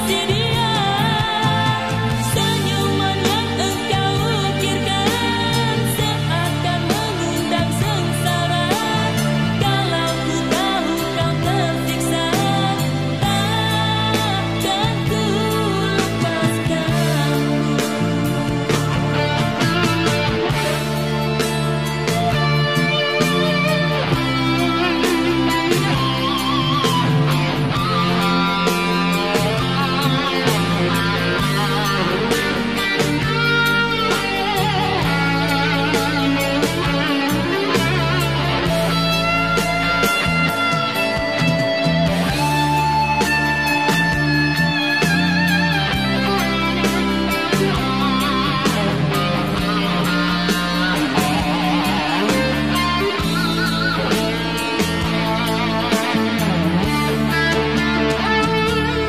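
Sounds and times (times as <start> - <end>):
electric guitar solo: 0.0 - 59.0
slow rock band backing: 0.0 - 59.0.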